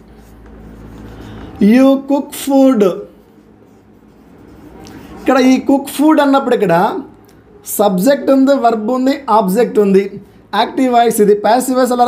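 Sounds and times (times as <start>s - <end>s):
marker writing on whiteboard: 0.0s - 7.2s.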